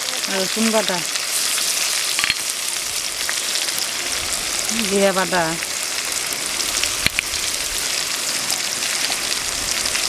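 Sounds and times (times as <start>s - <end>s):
onion frying in hot oil: 0.0s - 10.0s.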